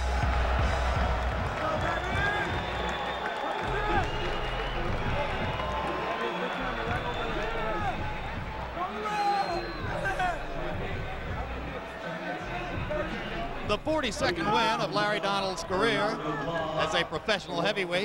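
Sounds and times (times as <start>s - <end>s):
crowd voices and shouts: 0.0s - 18.0s
music playing: 0.0s - 18.0s.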